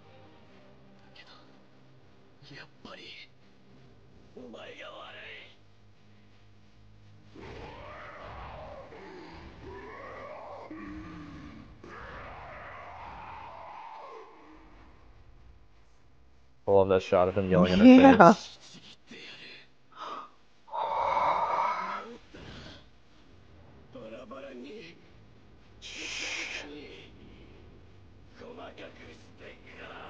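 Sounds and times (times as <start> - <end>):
wavering vocal cry: 7.6 - 14.8, 20.7 - 22.2.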